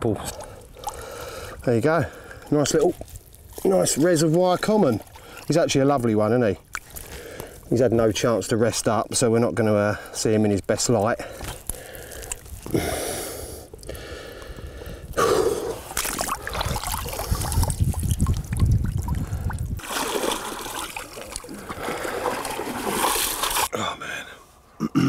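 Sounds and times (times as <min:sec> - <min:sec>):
water splashing and trickling: 0:00.0 - 0:09.3, 0:10.2 - 0:23.8
man breathing heavily: 0:00.4 - 0:02.4, 0:11.2 - 0:15.9.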